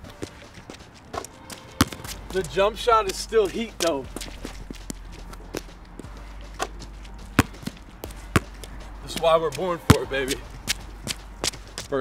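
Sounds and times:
basketball bouncing on wet court: 0:01.8 - 0:02.3, 0:06.6 - 0:11.2.

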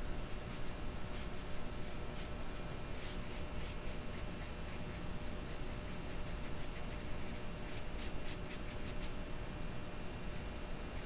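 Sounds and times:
paintbrush strokes on paper: 0:00.0 - 0:09.2.

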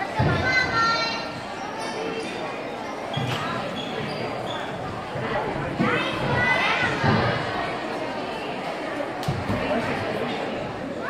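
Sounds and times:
voices murmuring: 0:00.0 - 0:11.0.

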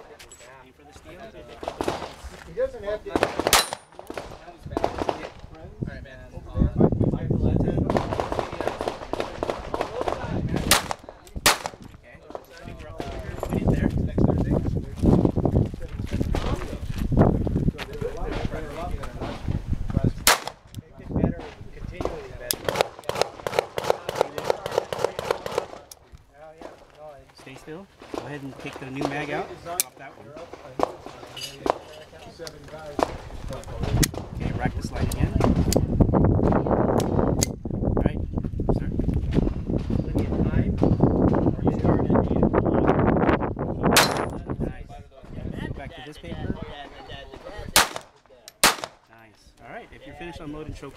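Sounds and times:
pistol shots: 0:03.1 - 0:05.3, 0:07.9 - 0:11.8, 0:20.2 - 0:20.6, 0:47.8 - 0:49.0.

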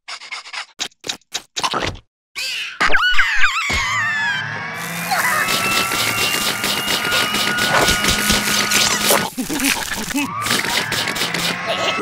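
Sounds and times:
cartoon noodle slurp: 0:07.6 - 0:10.3.

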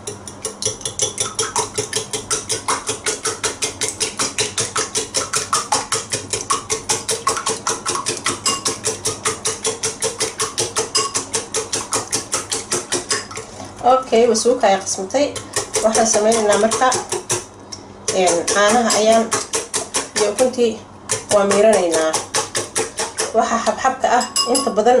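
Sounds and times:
whisking eggs in ceramic bowl: 0:00.0 - 0:13.9, 0:14.7 - 0:24.9.

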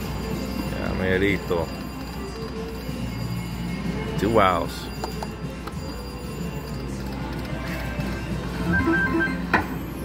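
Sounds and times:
electronic game music: 0:08.6 - 0:09.5.

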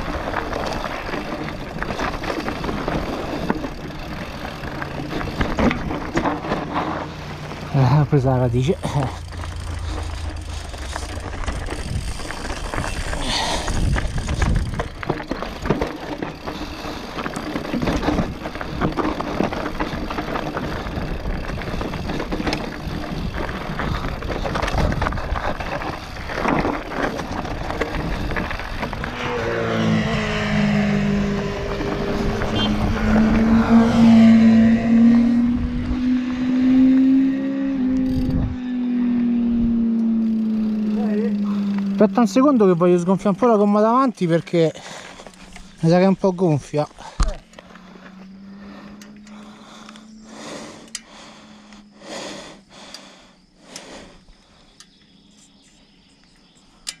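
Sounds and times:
bike rattling over stones: 0:00.0 - 0:34.7, 0:38.0 - 0:53.3
buzzing tone: 0:08.4 - 0:19.3, 0:27.1 - 0:42.6
wind on microphone: 0:10.4 - 0:15.0, 0:37.9 - 0:38.7.

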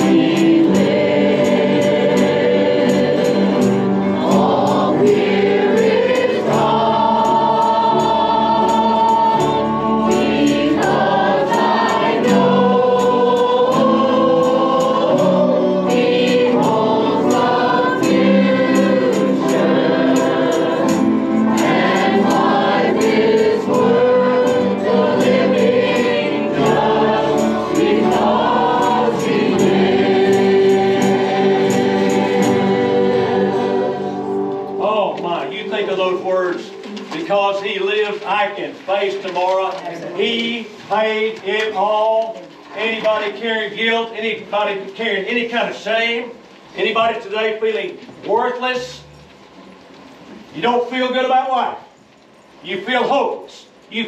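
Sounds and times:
choir singing gospel song: 0:00.0 - 0:42.1
instrumental accompaniment: 0:00.0 - 0:43.5, 0:47.9 - 0:50.6.

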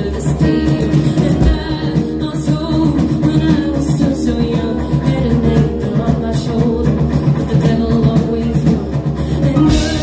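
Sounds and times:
drums: 0:00.0 - 0:10.0
electric guitar: 0:00.0 - 0:10.0
woman singing into a microphone: 0:00.0 - 0:10.0.

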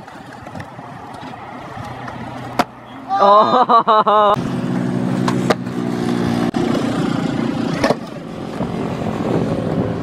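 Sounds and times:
skateboard trucks grinding on concrete: 0:00.0 - 0:03.6, 0:04.4 - 0:10.0.

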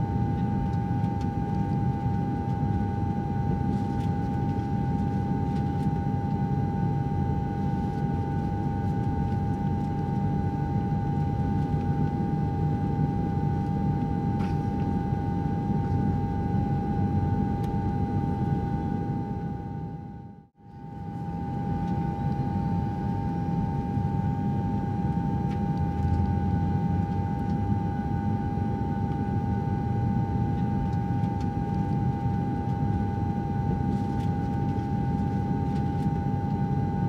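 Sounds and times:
constant whine: 0:00.0 - 0:37.0
jet engine and airflow rumble: 0:00.0 - 0:37.0.

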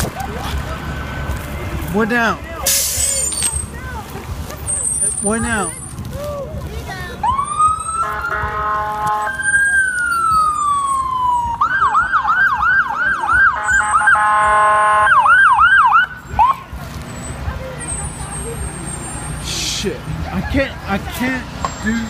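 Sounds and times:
fire truck siren: 0:07.2 - 0:16.7
fire truck horn blasts: 0:08.0 - 0:09.4, 0:13.4 - 0:15.4.

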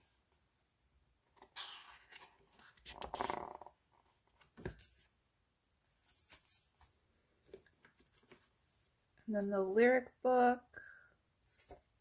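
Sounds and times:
book pages riffled and turned: 0:01.3 - 0:05.2, 0:05.9 - 0:09.1, 0:11.4 - 0:12.0.

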